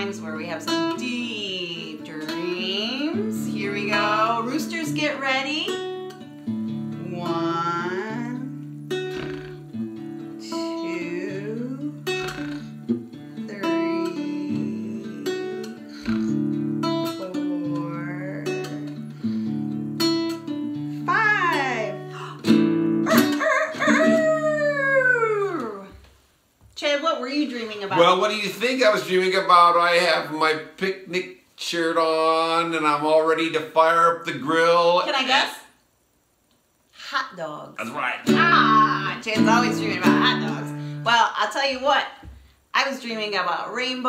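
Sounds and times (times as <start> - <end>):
acoustic guitar played gently: 0.0 - 26.0, 27.4 - 30.7, 37.8 - 41.4
voice gliding in pitch: 13.5 - 16.4, 23.1 - 26.0.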